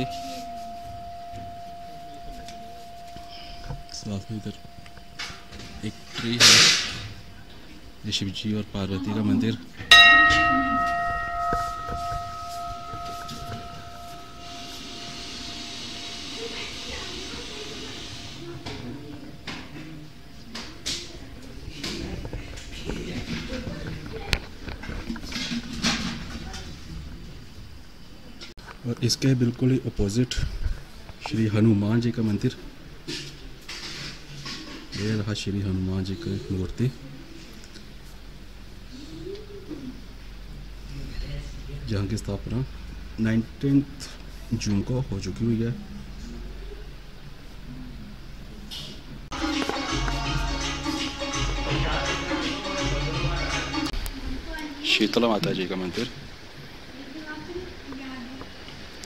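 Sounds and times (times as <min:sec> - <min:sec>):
temple bell ringing: 0:00.0 - 0:06.4, 0:09.9 - 0:16.5
steady low hum: 0:00.0 - 0:25.4.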